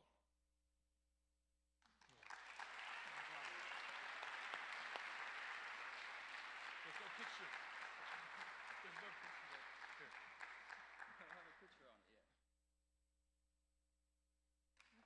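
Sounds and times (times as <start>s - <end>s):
audience applauding: 1.8s - 11.8s
voices among clapping: 1.8s - 11.8s, 14.8s - 15.0s.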